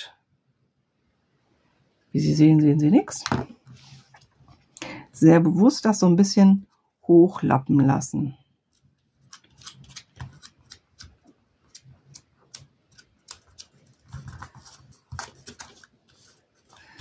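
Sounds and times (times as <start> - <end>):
paper rustling: 9.2 - 17.0
hands tapping paper: 9.3 - 16.8.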